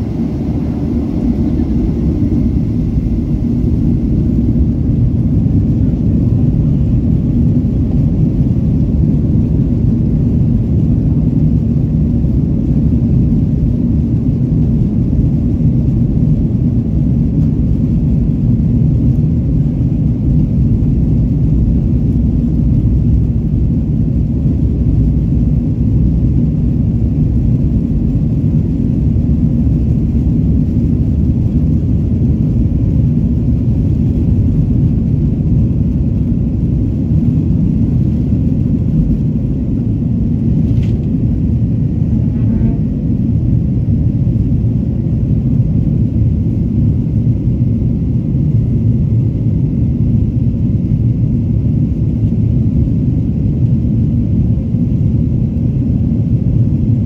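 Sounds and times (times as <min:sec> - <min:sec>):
jet engines and runway rumble: 0:00.0 - 0:57.0.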